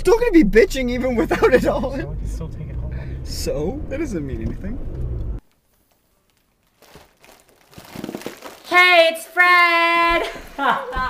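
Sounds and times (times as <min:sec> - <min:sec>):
foil balloon crinkling: 0:05.4 - 0:09.2.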